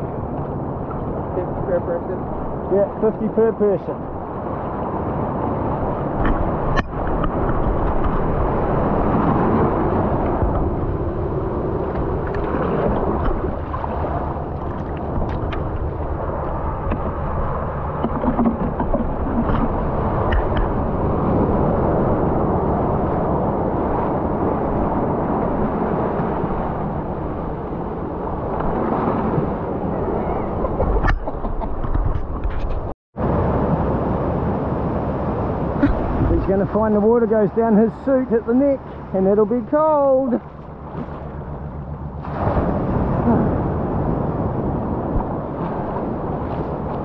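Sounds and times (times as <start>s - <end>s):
sea water churning around rocks: 0.5s - 31.1s, 33.2s - 47.0s.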